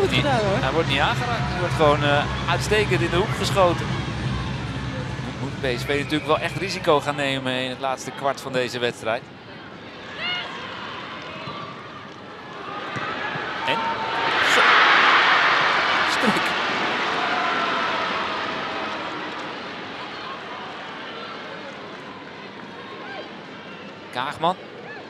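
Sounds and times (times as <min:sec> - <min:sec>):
stadium crowd roaring: 0:00.0 - 0:07.8, 0:12.4 - 0:23.4.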